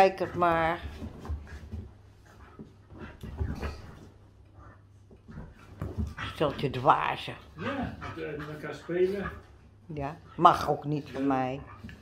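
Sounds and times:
dogs scuffling on cushions: 0.0s - 4.2s
faint dog sounds: 7.5s - 12.0s.

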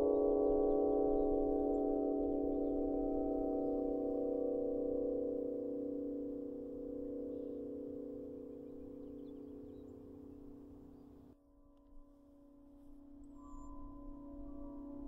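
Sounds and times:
wind harp sustained tones: 0.0s - 11.1s, 11.9s - 15.0s.

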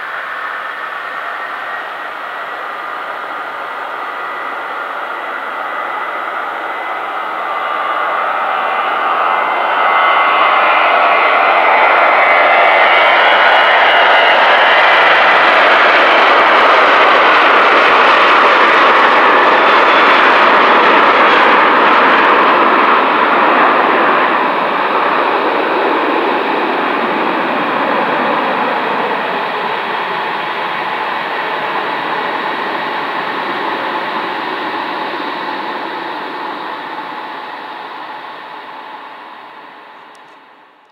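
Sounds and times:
high jet whine: 0.0s - 40.9s
jet engines at takeoff: 0.0s - 40.9s.

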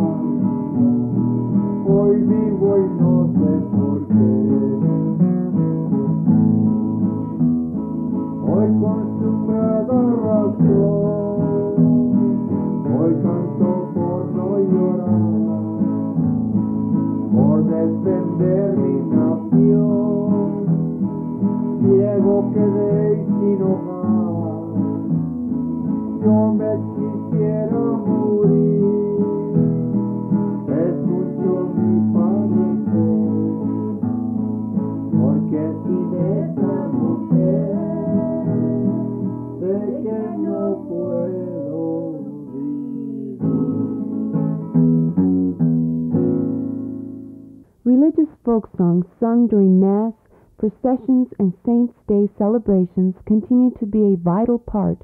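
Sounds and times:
acoustic guitar folk song: 0.0s - 55.0s.

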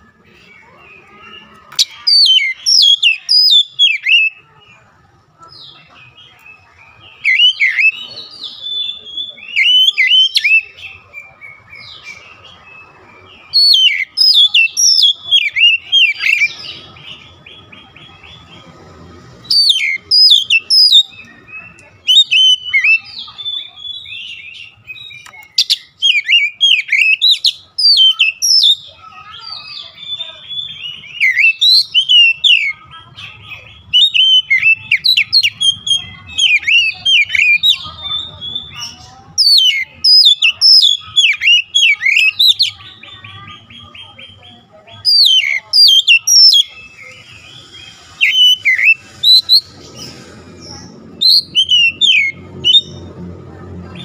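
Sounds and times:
bird singing whistled phrases: 0.9s - 4.4s, 6.3s - 12.8s, 13.5s - 17.3s, 19.5s - 32.8s, 33.9s - 43.2s, 45.0s - 49.8s, 51.2s - 53.0s.

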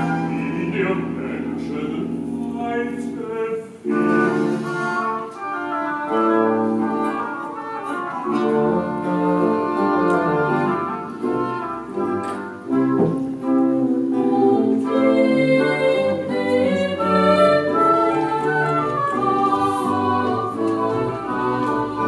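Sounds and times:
chamber orchestra playing: 0.0s - 22.0s.

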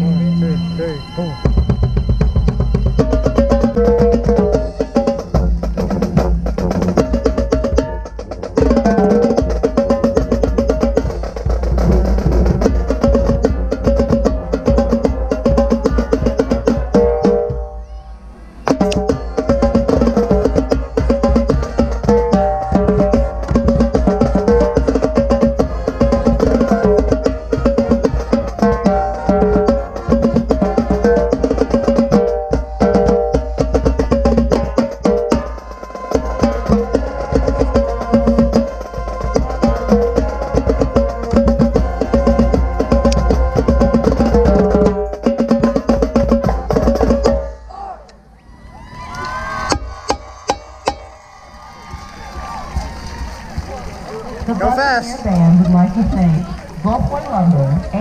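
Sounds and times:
marching tenor drums: 0.0s - 17.8s, 18.7s - 47.6s, 52.6s - 58.0s.

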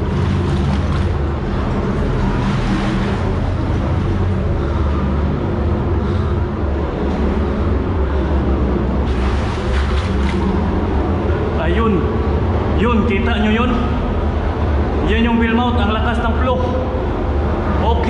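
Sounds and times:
low drone of machinery: 0.0s - 18.0s.

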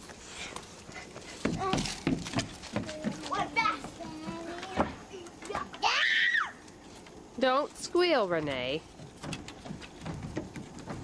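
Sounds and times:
children squealing and calling out: 2.8s - 6.7s.

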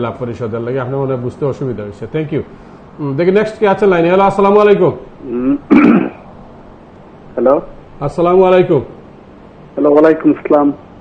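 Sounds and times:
man clearing his throat: 5.3s - 6.2s.

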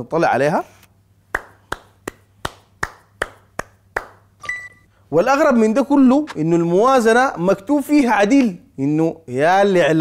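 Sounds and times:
man clapping hands slowly: 1.3s - 4.3s.

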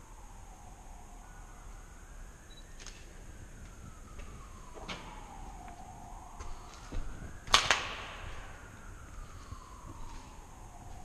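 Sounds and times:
distant siren wailing: 0.0s - 11.0s.

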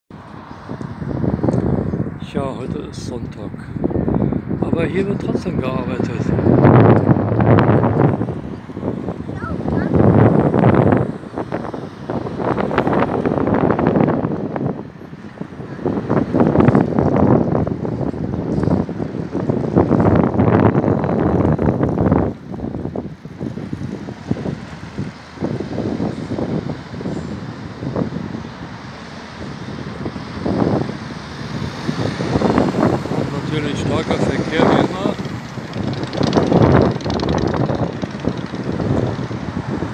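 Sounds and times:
road traffic: 0.1s - 39.9s
wind gusting on microphone: 0.1s - 39.9s.

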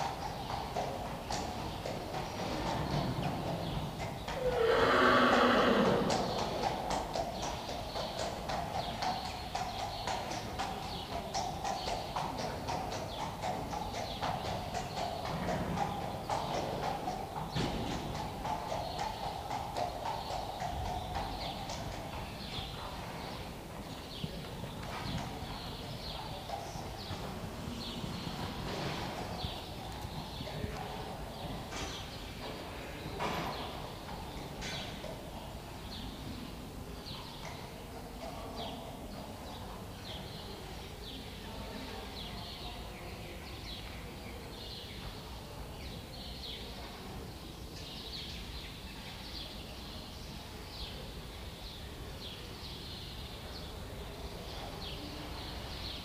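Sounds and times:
horse hooves on sand: 0.0s - 38.8s
horse whinny: 4.4s - 6.3s.

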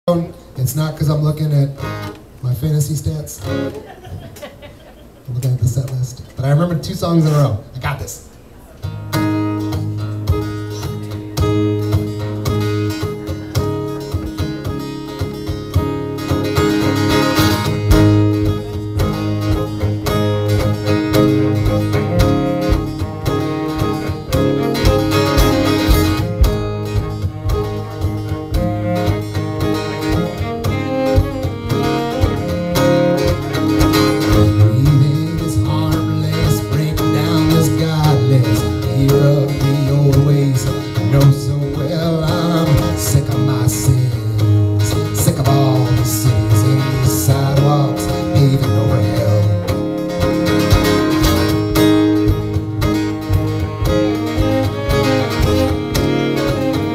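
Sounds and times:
acoustic guitar strumming: 0.1s - 56.9s
cello: 14.7s - 36.4s, 37.0s - 56.9s.

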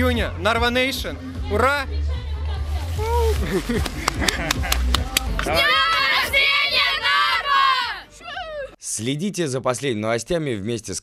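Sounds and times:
children shouting and cheering: 5.4s - 8.8s.

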